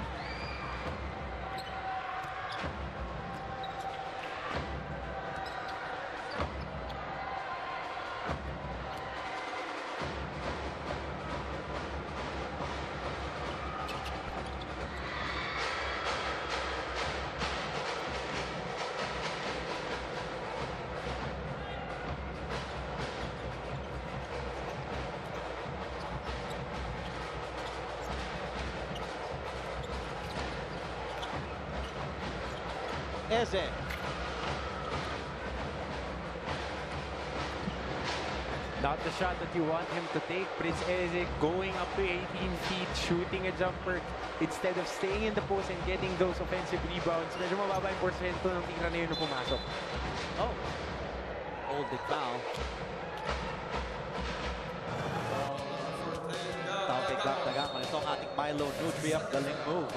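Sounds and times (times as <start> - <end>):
crowd hubbub: 0.0 - 59.9
sneaker squeaks: 0.1 - 4.6, 5.2 - 7.0, 13.6 - 15.3, 23.7 - 35.1, 49.0 - 50.0, 57.0 - 59.6.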